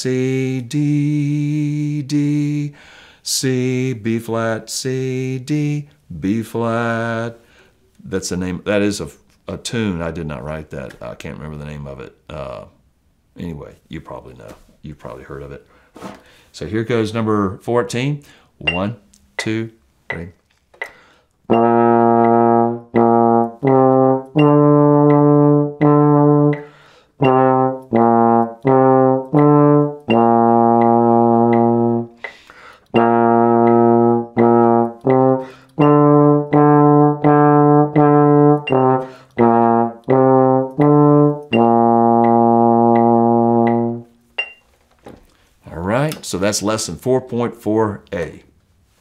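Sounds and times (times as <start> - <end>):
trombone playing slow melody: 21.5 - 44.3.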